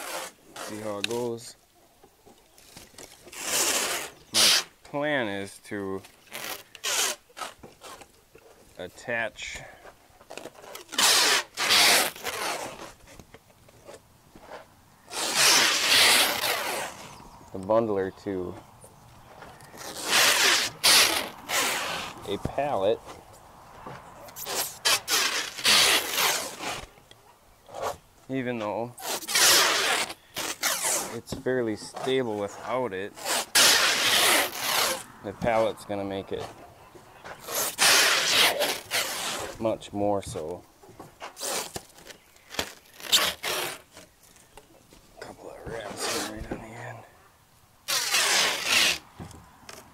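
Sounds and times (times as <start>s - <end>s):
plastic stretch wrap pulled off roll: 6.2s - 8.0s, 10.3s - 13.1s, 14.5s - 17.2s, 19.7s - 22.4s, 29.0s - 31.3s, 41.3s - 44.5s, 47.8s - 49.1s.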